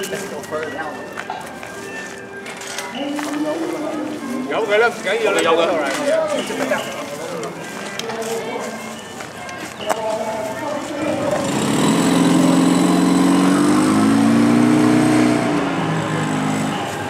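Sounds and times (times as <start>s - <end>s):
people's voices: 0.0s - 17.0s
engine running nearby: 11.1s - 17.0s.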